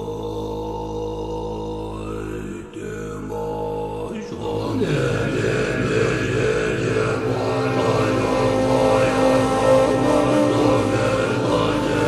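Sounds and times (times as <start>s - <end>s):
deep voice chanting om: 0.0s - 12.0s.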